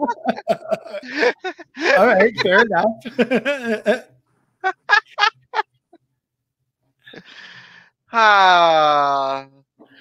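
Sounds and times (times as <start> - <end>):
person laughing: 0.0 - 5.6.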